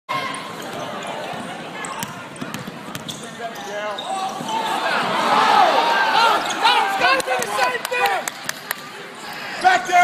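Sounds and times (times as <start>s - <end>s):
crowd chatter: 0.1s - 10.0s.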